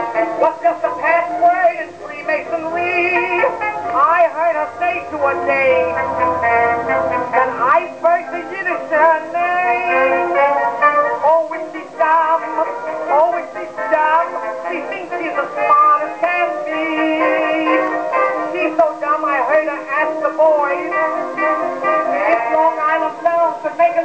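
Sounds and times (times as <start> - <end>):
old dance-band record playing: 0.0 - 24.0
record surface hiss: 0.0 - 24.0.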